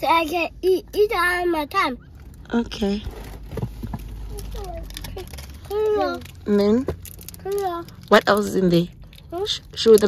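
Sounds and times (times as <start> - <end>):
low steady car hum: 0.0 - 10.0.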